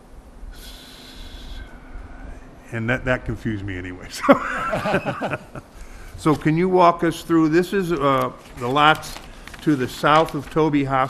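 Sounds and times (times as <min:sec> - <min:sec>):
low room hum: 0:00.0 - 0:11.0
person exhaling sharply through nose: 0:00.5 - 0:02.0.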